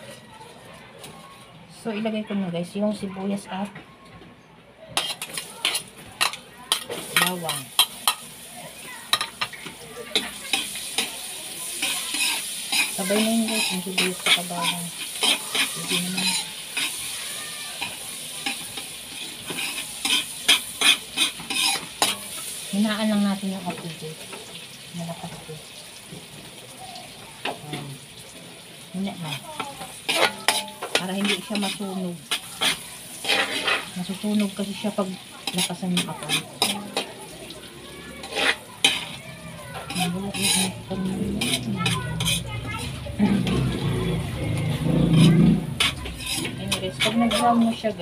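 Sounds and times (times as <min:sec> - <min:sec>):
metal spatula scraping a pan: 0:05.0 - 0:25.4, 0:29.1 - 0:48.0
onion and garlic sizzling in butter: 0:05.0 - 0:48.0.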